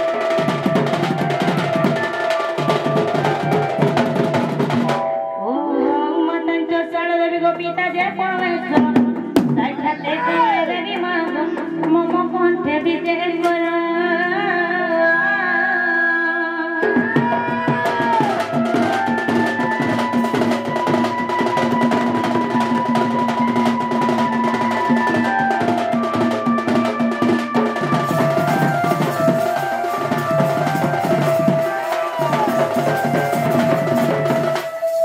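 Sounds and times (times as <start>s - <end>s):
fast dense drumming: 0.0s - 5.0s, 17.0s - 35.0s
held melody notes: 0.0s - 13.4s, 18.0s - 35.0s
person singing: 5.2s - 7.6s, 8.3s - 21.6s, 22.3s - 35.0s.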